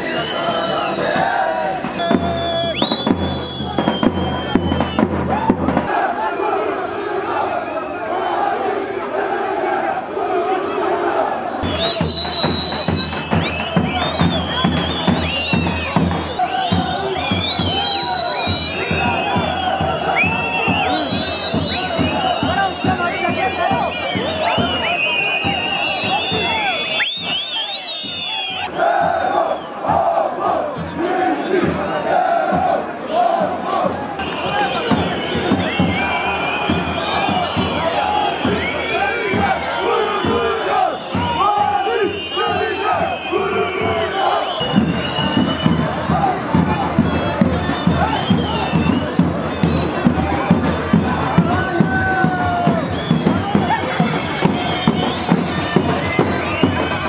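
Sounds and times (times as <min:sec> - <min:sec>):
steady drum beat: 0:00.0 - 0:06.2, 0:11.6 - 0:57.0
crowd shouting and chanting: 0:00.0 - 0:57.0.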